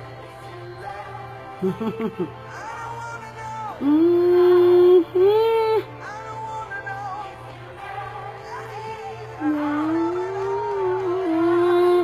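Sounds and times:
worship song: 0.0 - 5.1, 5.7 - 12.0
voice holding a long note: 9.4 - 12.0.

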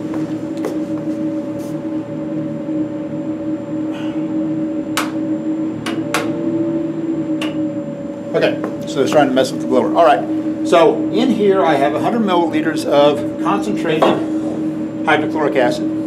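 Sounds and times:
exhaust blower droning hum: 0.0 - 16.0.

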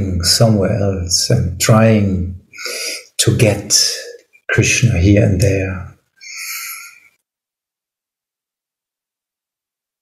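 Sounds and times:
person sighing: 2.6 - 3.1, 6.2 - 7.2.

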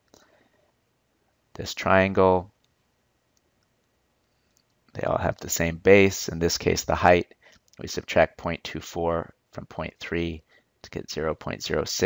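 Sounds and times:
man's voice: 1.6 - 2.5, 5.0 - 7.2, 7.8 - 12.0.

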